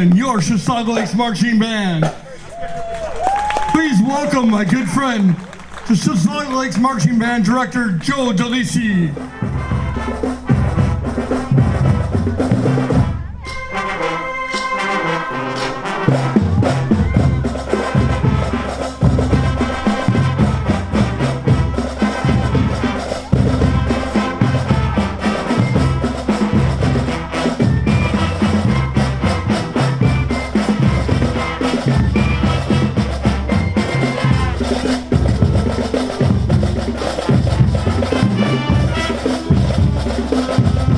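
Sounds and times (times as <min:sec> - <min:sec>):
marching band playing: 0:00.0 - 0:40.9.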